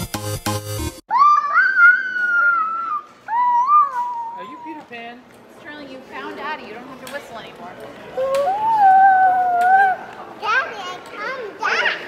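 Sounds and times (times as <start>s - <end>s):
toddler squealing: 1.1s - 4.7s, 8.2s - 10.1s.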